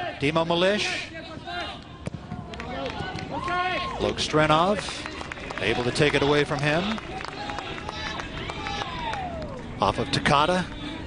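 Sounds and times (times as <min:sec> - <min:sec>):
open-air stadium ambience: 0:00.0 - 0:11.0.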